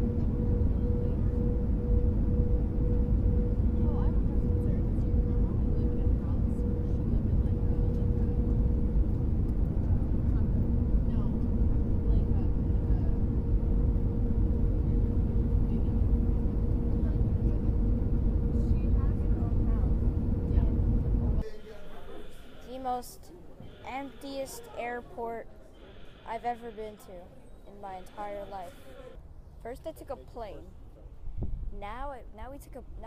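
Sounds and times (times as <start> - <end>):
airliner cabin rumble: 0.0 - 21.5
constant cabin hum: 0.0 - 32.0.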